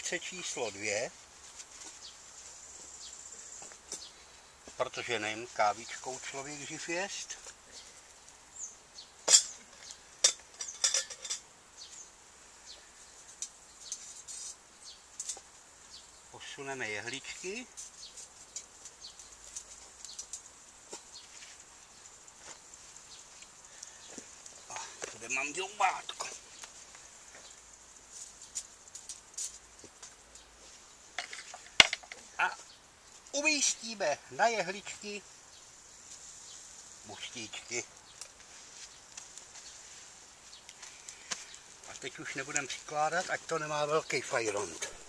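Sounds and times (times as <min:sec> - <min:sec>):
small clicks and rustles: 0:12.7 - 0:15.6, 0:17.7 - 0:25.2, 0:26.2 - 0:32.3, 0:37.8 - 0:43.5.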